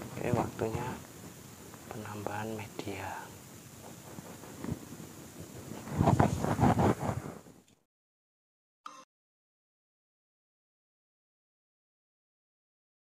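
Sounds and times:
rustling and handling noise: 0.0 - 7.8.

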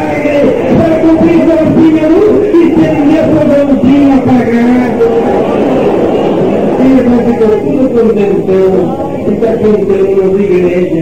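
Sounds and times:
congregation voices: 0.0 - 11.0.

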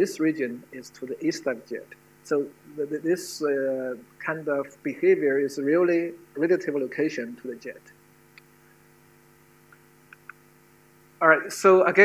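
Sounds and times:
faint electrical mains hum: 0.0 - 12.0.

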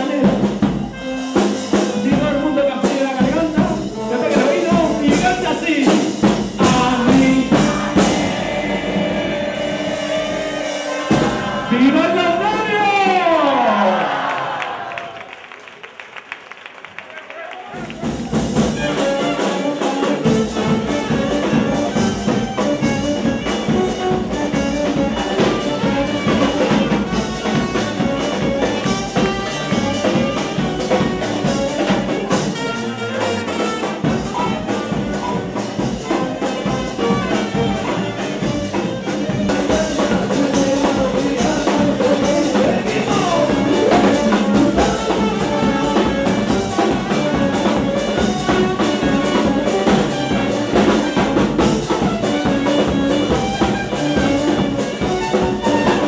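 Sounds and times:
steady drum beat: 0.0 - 13.4, 17.8 - 56.0
saxophone and trumpets: 0.0 - 14.0, 17.0 - 56.0.

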